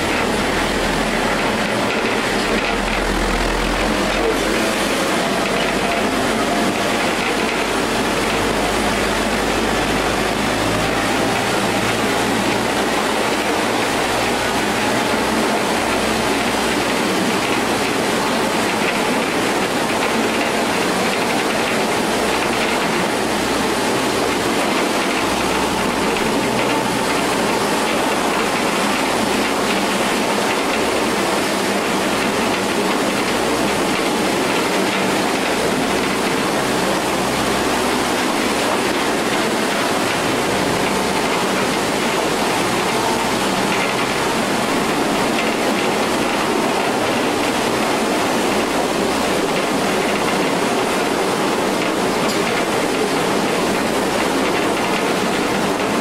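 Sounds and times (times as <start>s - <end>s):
mine train rumbling on rails: 0.0s - 56.0s.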